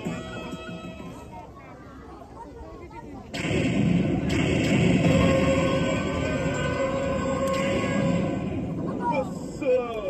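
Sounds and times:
low background murmur: 0:00.0 - 0:10.0
loud explosion sound effect: 0:03.3 - 0:08.9.

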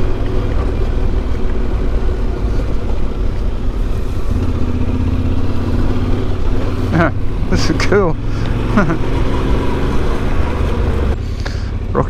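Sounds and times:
motorcycle engine at low throttle: 0:00.0 - 0:12.0.

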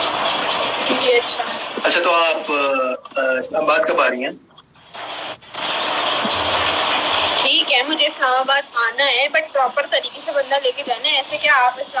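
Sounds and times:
loud rushing noise: 0:05.0 - 0:08.1.

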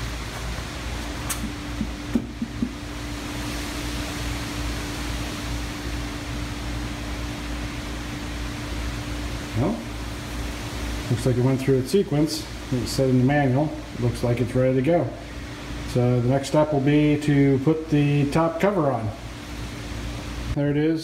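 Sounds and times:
air conditioner humming: 0:00.0 - 0:21.0.

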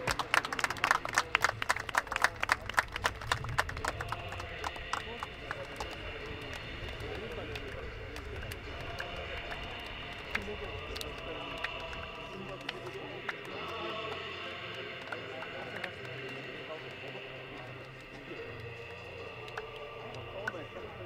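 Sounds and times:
voices talking: 0:00.0 - 0:21.0
hand claps and palm slaps: 0:19.4 - 0:19.8.

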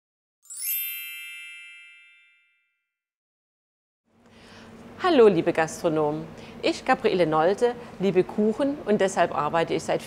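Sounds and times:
bell-like chime ringing: 0:00.4 - 0:03.0.

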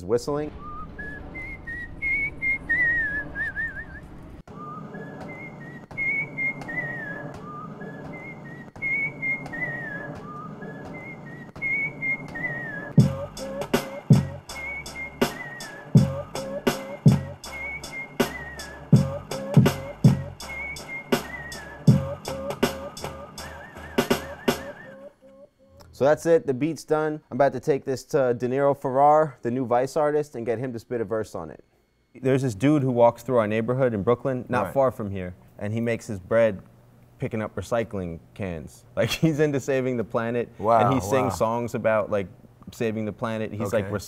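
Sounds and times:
looped whistling samples: 0:00.2 - 0:26.3
drum kicks: 0:10.1 - 0:12.4, 0:13.0 - 0:15.4, 0:16.0 - 0:18.4, 0:19.0 - 0:20.5
bass line: 0:13.0 - 0:15.4, 0:16.0 - 0:24.7.

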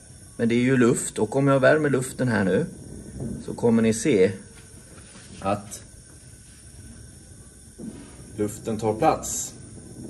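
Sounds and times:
burner flame hissing: 0:00.0 - 0:10.0.

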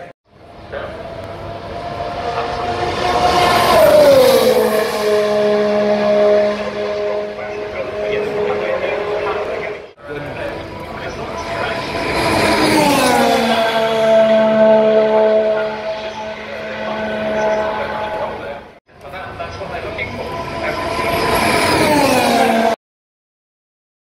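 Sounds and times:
racing car engines passing: 0:00.0 - 0:22.8.

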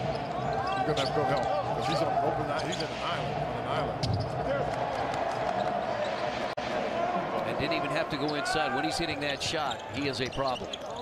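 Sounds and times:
sneakers squeaking on court: 0:00.0 - 0:02.0, 0:04.0 - 0:04.4, 0:09.6 - 0:11.0.

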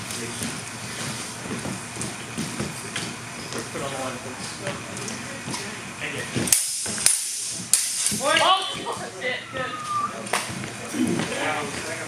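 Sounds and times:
low voices in a hall: 0:08.2 - 0:12.0.

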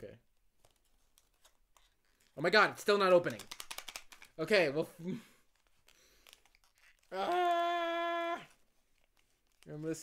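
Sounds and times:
man crying aah: 0:07.1 - 0:08.6
man talking: 0:09.6 - 0:10.0.

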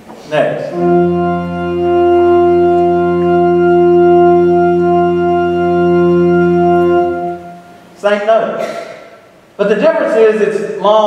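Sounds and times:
organ holding long note: 0:00.7 - 0:08.0.

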